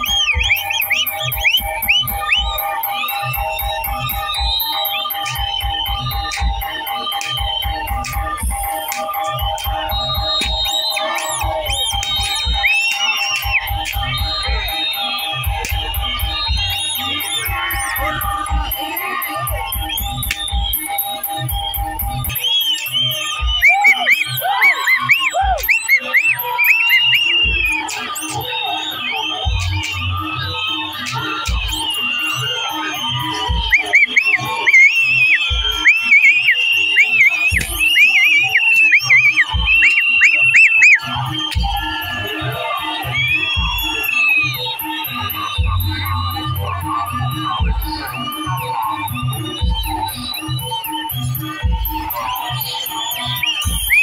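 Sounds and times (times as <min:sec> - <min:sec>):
crowd: 0:00.0 - 0:54.0
shrill sliding whistles: 0:00.0 - 0:54.0.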